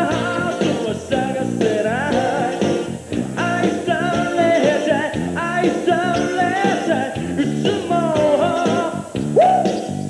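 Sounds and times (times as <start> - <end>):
man singing pop song: 0.0 - 9.7
live band playing: 0.0 - 10.0.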